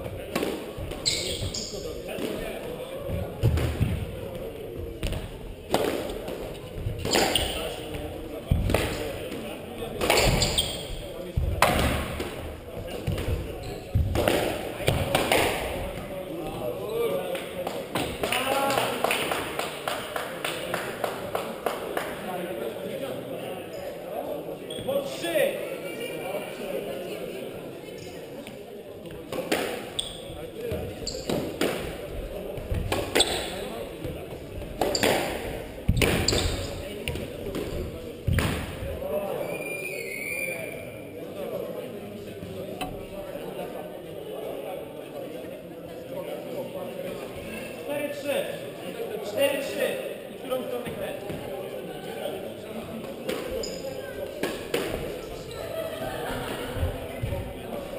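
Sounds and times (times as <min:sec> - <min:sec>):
shoe squeaks: 0:00.9 - 0:02.0, 0:07.0 - 0:07.9, 0:10.0 - 0:11.1, 0:13.5 - 0:14.0, 0:24.6 - 0:25.0, 0:29.9 - 0:31.4, 0:33.1 - 0:33.7, 0:34.8 - 0:35.2, 0:36.0 - 0:36.8, 0:39.4 - 0:41.0, 0:53.5 - 0:54.2
squash ball hits echoing: 0:03.0 - 0:04.2, 0:04.9 - 0:16.1, 0:29.4 - 0:38.8.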